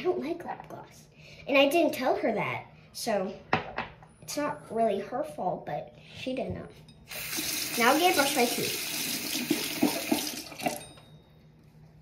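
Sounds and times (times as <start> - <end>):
faucet running onto toothbrush: 7.1 - 10.9.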